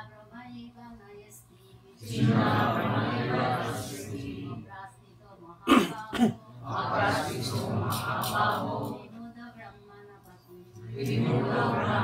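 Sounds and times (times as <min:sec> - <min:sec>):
person coughing: 0:05.6 - 0:06.5.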